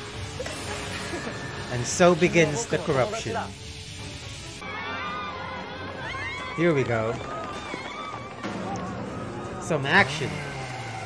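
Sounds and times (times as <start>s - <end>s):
people speaking: 1.7s - 3.5s.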